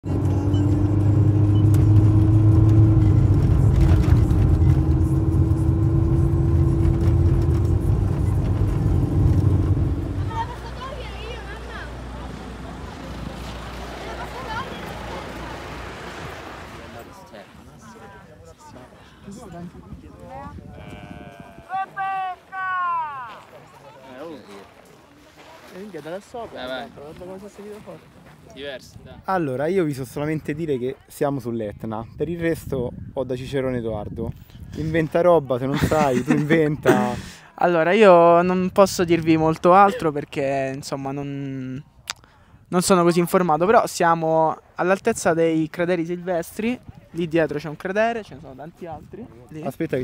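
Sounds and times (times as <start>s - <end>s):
car engine and road noise: 0.0s - 18.5s
person shouting a name: 21.2s - 23.4s.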